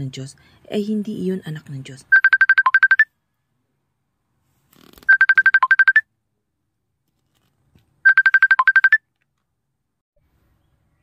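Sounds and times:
phone ringtone beeps: 2.1s - 3.1s, 5.1s - 6.1s, 8.0s - 9.0s.

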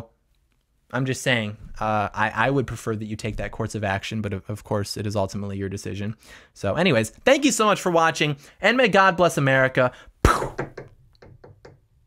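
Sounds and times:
sharp knock: 10.2s - 10.9s.

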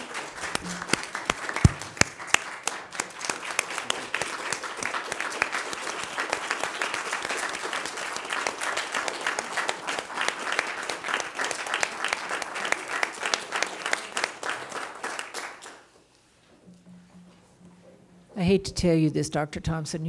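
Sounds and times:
people applauding: 0.0s - 15.9s.

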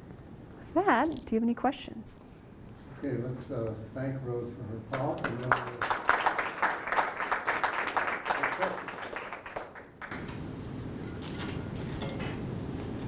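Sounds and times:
low background hum: 0.0s - 13.0s
audience applauding: 4.9s - 10.2s.

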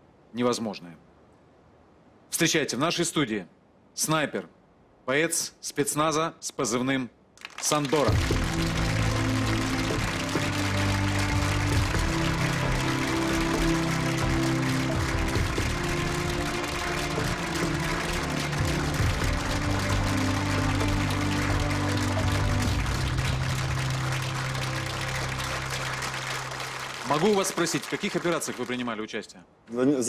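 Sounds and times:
audience applauding: 7.4s - 29.0s.

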